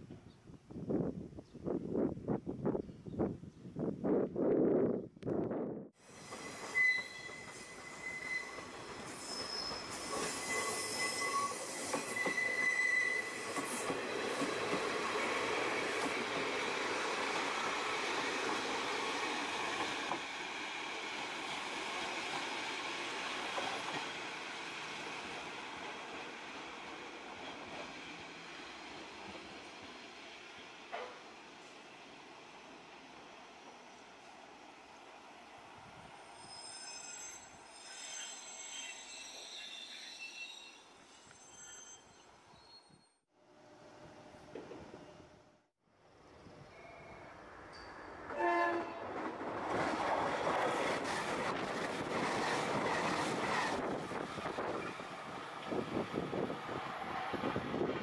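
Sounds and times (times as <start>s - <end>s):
train wheel squeals: 6.0s - 16.4s, 21.1s - 27.2s, 33.6s - 43.2s, 50.0s - 55.1s.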